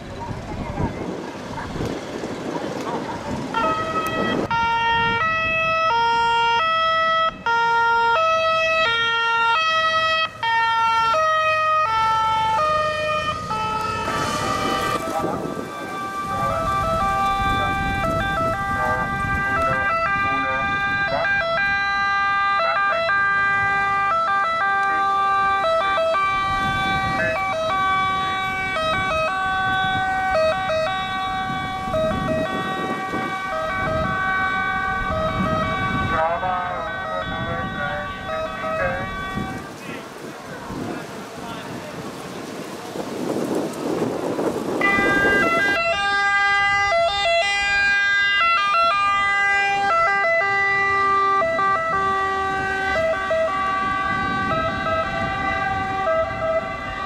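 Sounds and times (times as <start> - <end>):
low vehicle rumble: 0.0 - 57.0
two-tone ambulance siren: 3.2 - 39.8, 43.8 - 57.0
higher-pitched two-tone siren: 3.5 - 39.7, 44.8 - 57.0.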